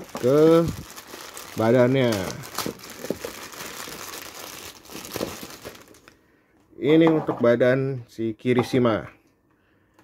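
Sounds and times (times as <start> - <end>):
plastic bag crinkling: 0.0 - 6.2.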